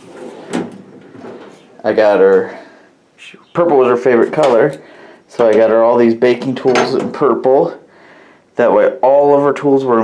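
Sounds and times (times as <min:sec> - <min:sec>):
metal drawer sliding open: 0:00.0 - 0:01.7.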